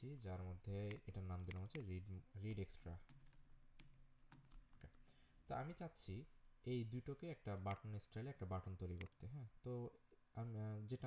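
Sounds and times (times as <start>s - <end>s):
keyboard key clicks: 0.8s - 1.8s.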